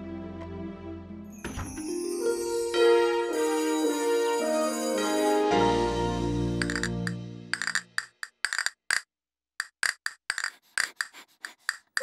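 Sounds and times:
held music chord: 0:02.0 - 0:07.5
castanets clicking: 0:06.6 - 0:12.0.

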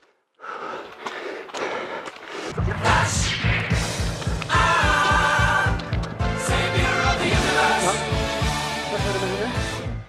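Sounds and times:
footfalls on muddy trail: 0:00.0 - 0:02.9, 0:03.7 - 0:06.4
runner breathing hard: 0:00.0 - 0:04.5.

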